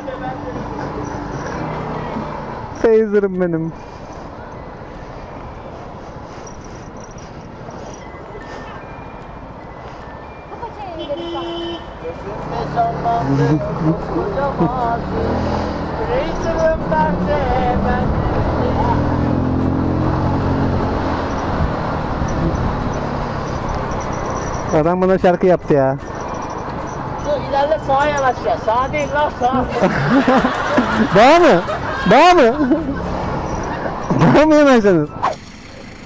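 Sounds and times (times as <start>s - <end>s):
scooter engine: 11.6s - 24.9s, 26.0s - 36.0s.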